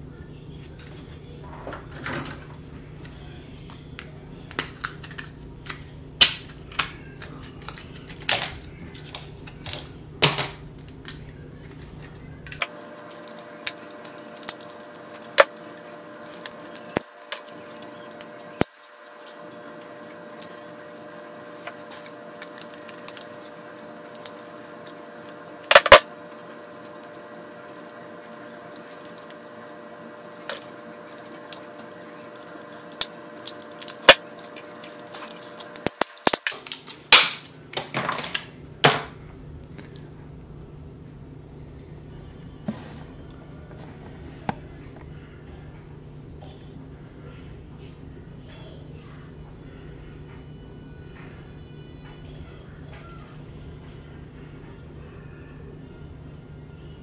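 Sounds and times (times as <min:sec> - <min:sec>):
plastic packaging crinkling: 0:10.7 - 0:38.4.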